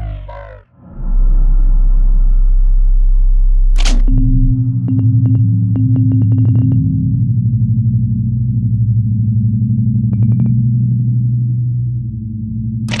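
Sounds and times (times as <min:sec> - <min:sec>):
low buzzing hum with flutter: 0:01.0 - 0:13.0.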